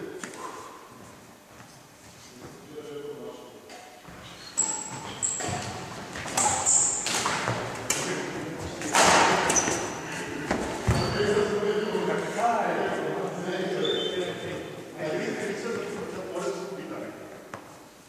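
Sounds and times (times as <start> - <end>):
shuttlecock hit by rackets: 8.8 - 9.6.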